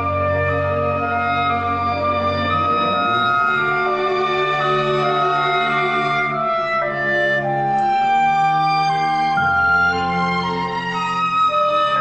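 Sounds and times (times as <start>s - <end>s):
chamber orchestra playing held chords: 0.0s - 12.0s.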